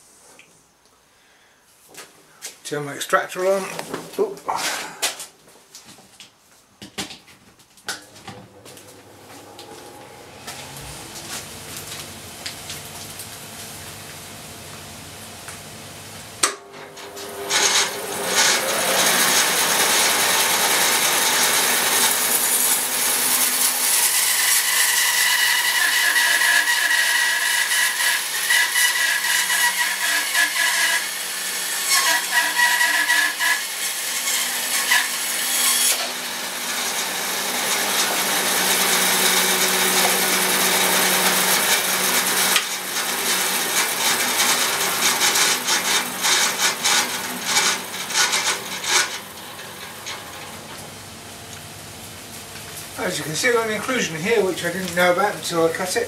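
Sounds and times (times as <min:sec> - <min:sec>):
dust extractor running: 0:07.9 - 0:56.0
bandsaw cutting log: 0:09.4 - 0:14.0, 0:16.4 - 0:50.9, 0:53.0 - 0:56.0.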